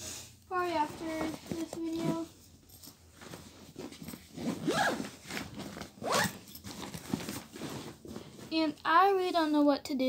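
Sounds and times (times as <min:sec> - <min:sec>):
handling rustle: 0:00.5 - 0:09.5
bag zipper zipping: 0:03.6 - 0:08.5.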